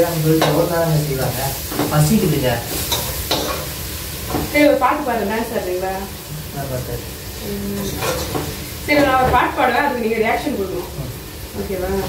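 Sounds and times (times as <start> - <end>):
oil sizzling in a pot: 0.0 - 12.0
metal spatula scraping a pot: 7.8 - 8.4.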